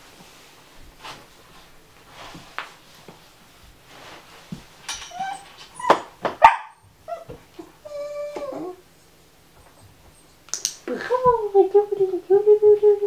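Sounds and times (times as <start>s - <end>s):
dog whining: 5.0s - 10.4s
dog yipping and whimpering: 5.0s - 10.4s.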